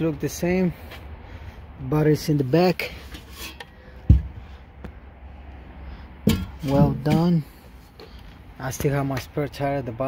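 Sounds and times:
dull thump: 4.0 - 5.0, 6.2 - 7.3.

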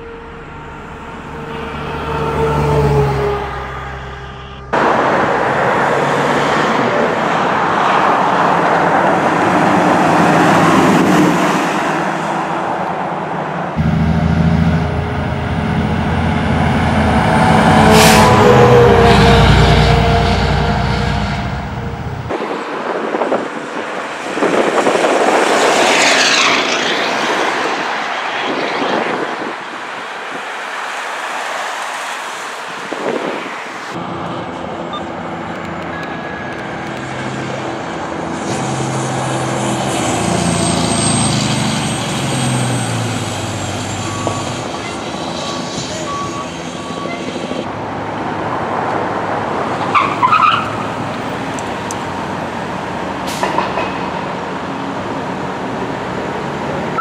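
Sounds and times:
siren wailing: 0.0 - 4.8, 13.8 - 22.3
fire engines passing: 0.0 - 57.0.

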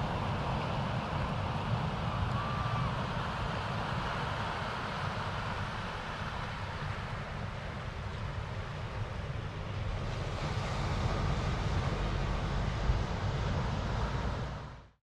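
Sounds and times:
surf on rocky shore: 0.0 - 14.8
wind buffeting microphone: 0.0 - 14.8.

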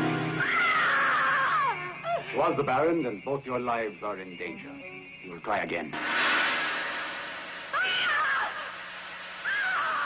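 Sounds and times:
high drawn-out scream: 0.3 - 2.2, 7.6 - 10.0.

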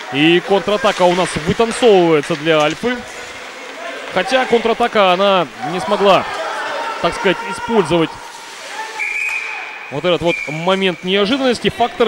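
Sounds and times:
faint arena background noise: 0.0 - 12.0
whistle blast: 9.0 - 10.7.

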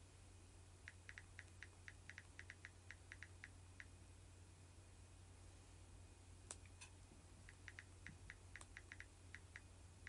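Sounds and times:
low steady hum: 0.0 - 10.0
fingertips tapping phone screen: 0.9 - 3.9, 7.5 - 9.7.

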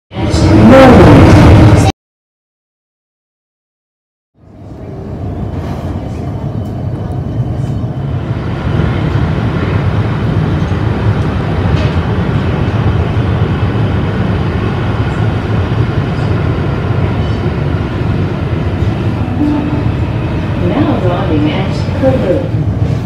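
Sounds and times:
electric train running: 4.9 - 23.0.

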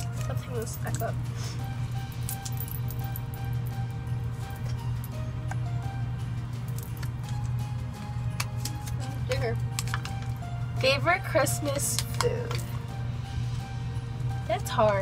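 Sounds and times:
soft background music: 0.0 - 15.0.

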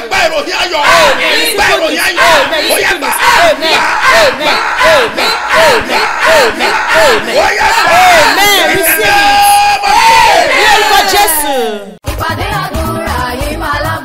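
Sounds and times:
man shouting in prayer: 0.0 - 11.9.

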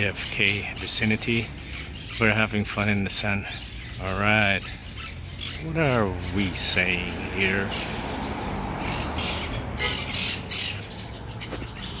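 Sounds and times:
parrots squawking: 0.0 - 12.0.

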